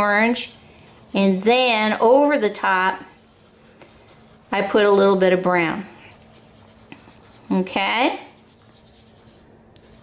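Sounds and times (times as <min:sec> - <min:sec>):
crayon scratching on paper: 0:00.0 - 0:10.0.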